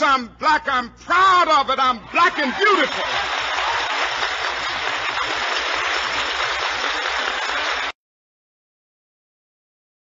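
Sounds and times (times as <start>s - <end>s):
audience applauding: 2.2s - 8.0s.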